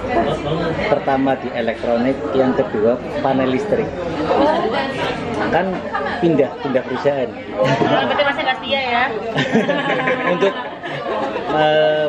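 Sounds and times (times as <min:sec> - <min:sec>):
voices chattering: 0:00.0 - 0:12.0
men talking: 0:05.4 - 0:08.2, 0:09.4 - 0:12.0.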